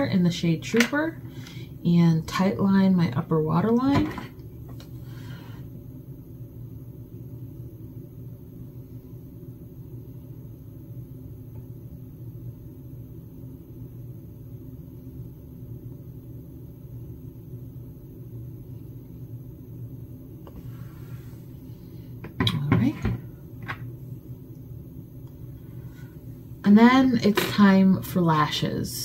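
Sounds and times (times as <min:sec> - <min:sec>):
low background hum: 0:00.0 - 0:29.0.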